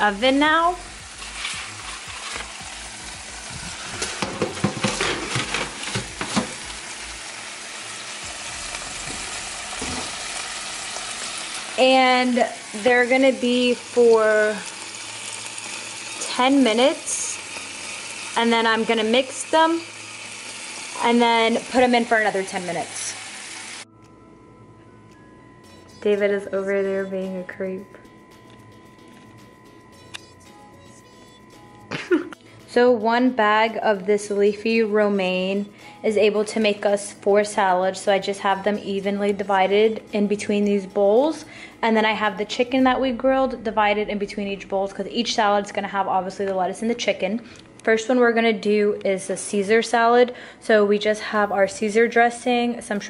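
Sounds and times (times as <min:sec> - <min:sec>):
pot sizzling and bubbling: 0:00.0 - 0:23.9, 0:25.6 - 0:53.0
steady hiss: 0:00.8 - 0:04.3
metal pans clattering on oven racks: 0:03.9 - 0:06.6, 0:09.0 - 0:10.2
faint steady hum: 0:23.8 - 0:32.8, 0:36.9 - 0:53.0.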